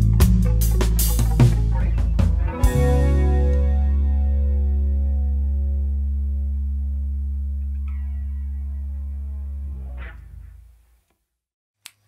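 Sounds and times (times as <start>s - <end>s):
electric and bass guitar chord ringing: 0.0s - 10.6s.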